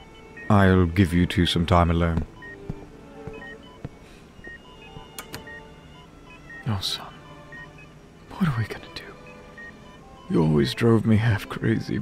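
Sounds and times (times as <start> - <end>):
patient monitor beeping: 0.0 - 12.0
soft tones: 0.0 - 12.0.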